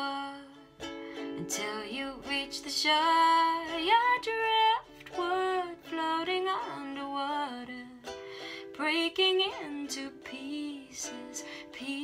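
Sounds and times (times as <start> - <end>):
ukulele strumming: 0.0 - 12.0
woman singing: 0.0 - 12.0.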